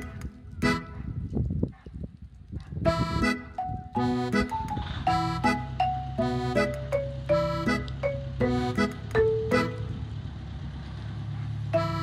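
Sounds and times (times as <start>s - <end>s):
accordion background music: 0.0s - 1.1s, 2.9s - 10.0s, 11.8s - 12.0s
tractor engine running: 0.0s - 1.3s, 2.9s - 12.0s.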